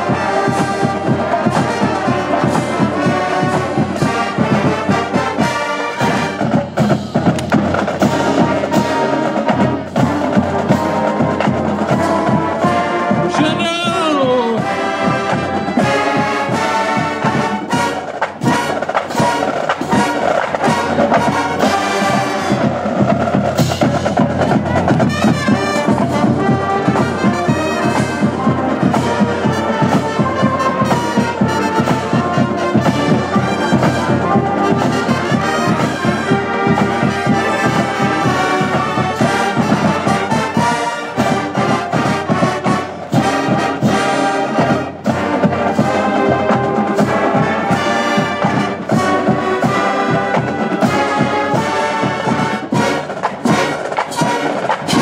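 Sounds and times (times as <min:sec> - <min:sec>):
marching band brass: 0:00.0 - 0:55.0
steady drum beat: 0:00.0 - 0:55.0.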